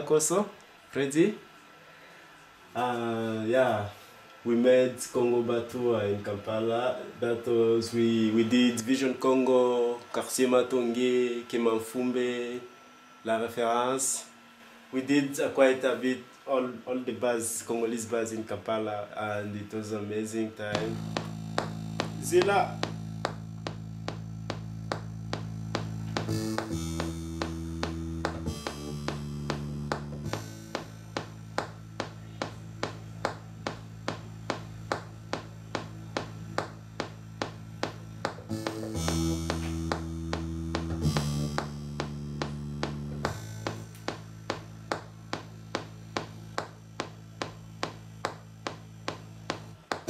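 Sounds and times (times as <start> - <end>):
low bass notes: 20.6 - 50.0
sharp tapping percussion: 20.7 - 50.0.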